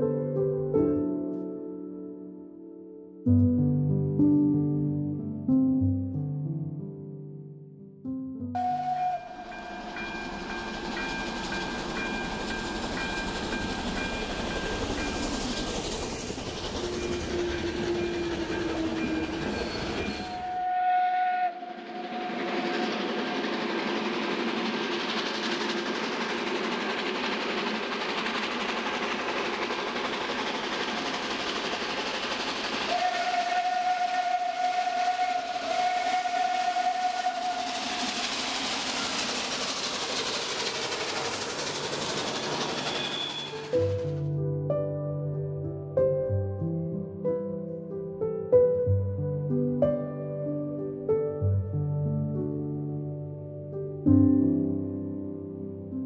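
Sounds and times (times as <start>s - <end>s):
steam whistle: 8.6s - 11.2s, 16.7s - 23.6s, 32.8s - 39.3s, 42.4s - 44.0s
steam locomotive running: 8.6s - 44.2s.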